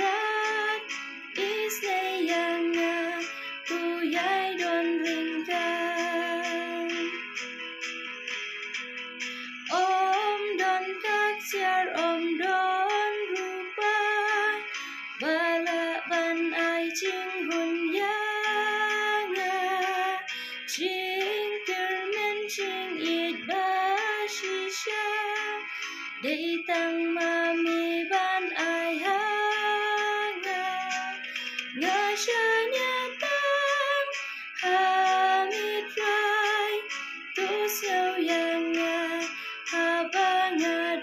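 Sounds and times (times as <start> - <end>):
woman singing gospel song: 1.4 - 7.2, 9.7 - 20.2, 20.8 - 25.6, 26.2 - 31.2, 31.8 - 36.8, 37.4 - 41.0.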